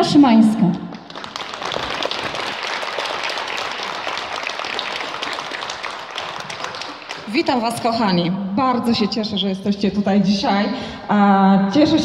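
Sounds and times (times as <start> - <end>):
audience applauding: 0.9 - 8.3.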